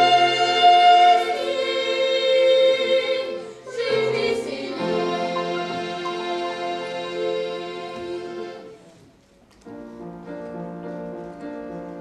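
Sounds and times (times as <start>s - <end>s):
young female singers: 0.0s - 8.7s
accordion: 2.8s - 8.8s.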